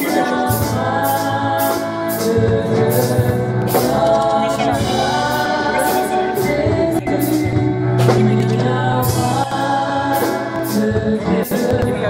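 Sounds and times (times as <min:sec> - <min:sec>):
keyboard accompaniment: 0:00.0 - 0:12.0
women singing gospel: 0:00.0 - 0:12.0.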